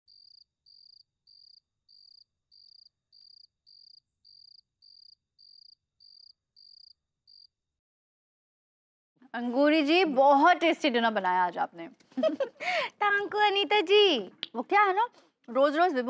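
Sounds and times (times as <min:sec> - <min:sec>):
cricket chirping: 0:00.1 - 0:07.6.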